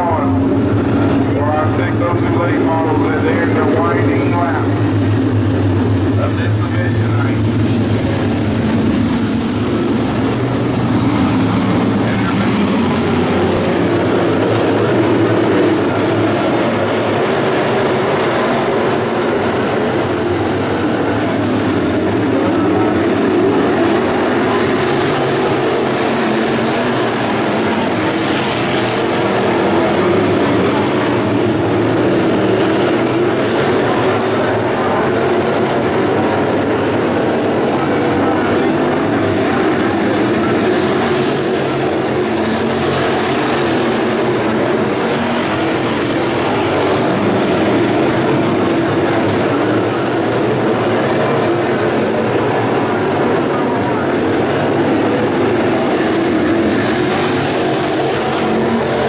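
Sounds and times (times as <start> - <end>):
race car engines roaring: 0.0 - 59.0.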